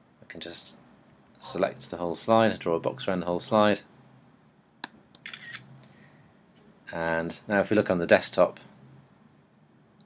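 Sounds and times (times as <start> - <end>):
camera shutter sound: 5.2 - 5.7.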